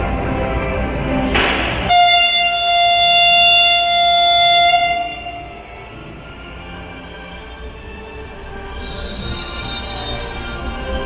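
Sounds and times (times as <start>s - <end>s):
train engine running: 0.0s - 11.0s
train air horn: 1.8s - 5.8s.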